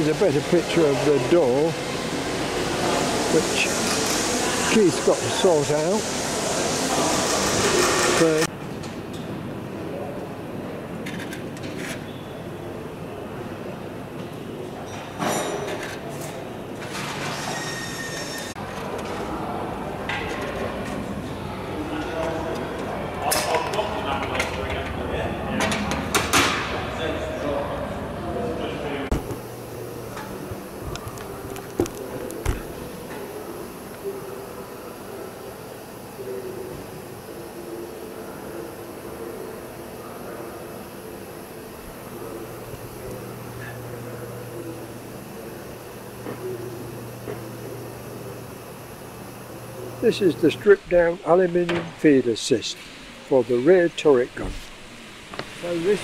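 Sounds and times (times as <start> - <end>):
workshop hum: 0.0 - 56.0.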